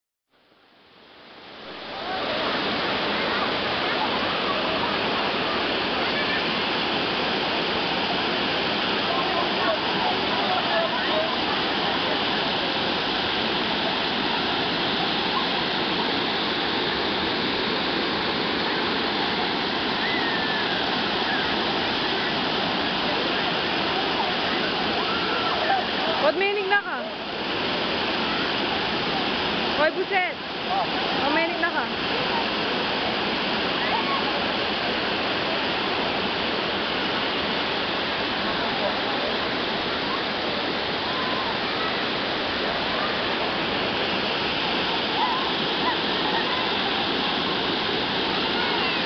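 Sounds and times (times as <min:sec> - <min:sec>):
waterfall rushing over rocks: 0:00.5 - 0:49.0
faint voices of people: 0:01.8 - 0:07.7, 0:20.0 - 0:26.3, 0:38.3 - 0:49.0.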